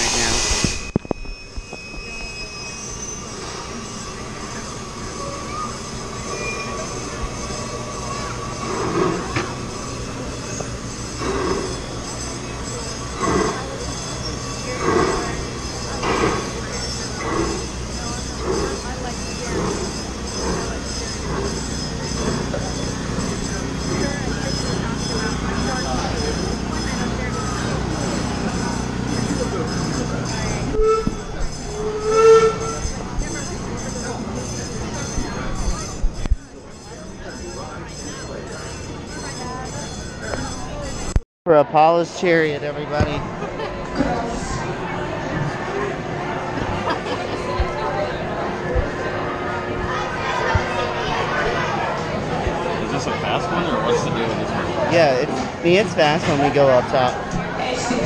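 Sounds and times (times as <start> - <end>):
short pitched tone: 0.0 - 10.6, 22.8 - 41.2
steam locomotive exhaust chuffs: 0.0 - 41.2.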